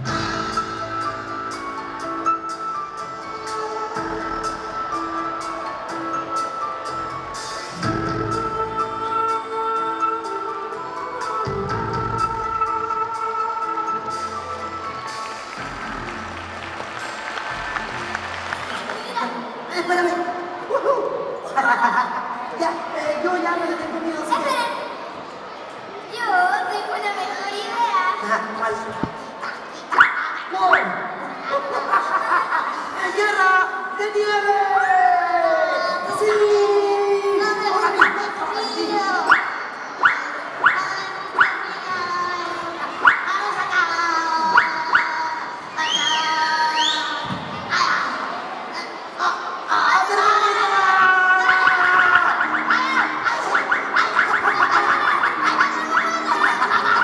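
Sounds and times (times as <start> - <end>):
background music: 0.0 - 27.0, 30.7 - 57.0
audience applauding: 14.9 - 19.7.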